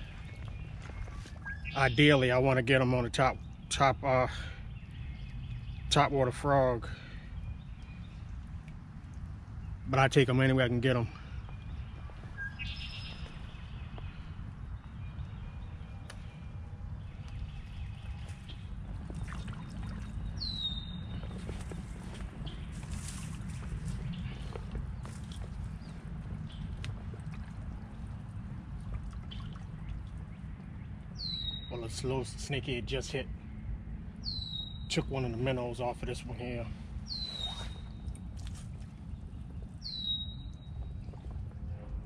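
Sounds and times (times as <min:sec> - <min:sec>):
bird calls: 0:00.0 - 0:08.4, 0:09.6 - 0:27.2, 0:34.2 - 0:41.4
waders splashing through water: 0:18.0 - 0:30.5, 0:37.1 - 0:39.6.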